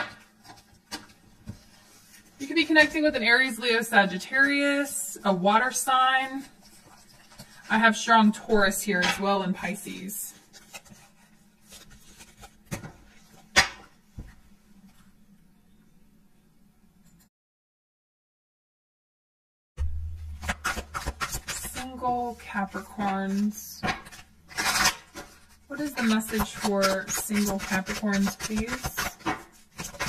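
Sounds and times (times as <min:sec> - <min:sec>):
cards rustling while shuffled: 0:06.3 - 0:07.7, 0:10.3 - 0:13.5, 0:20.2 - 0:30.0.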